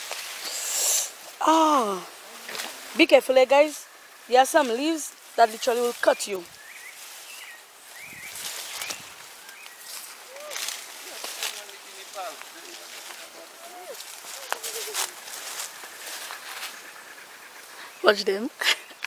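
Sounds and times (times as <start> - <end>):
leaves and undergrowth rustling: 0.0 - 19.0
faint distant voices: 10.2 - 16.2.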